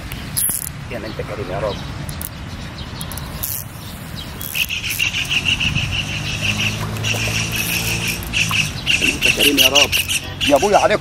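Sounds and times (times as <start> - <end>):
insect chirping: 3.0 - 10.7
low motor hum: 5.2 - 9.0.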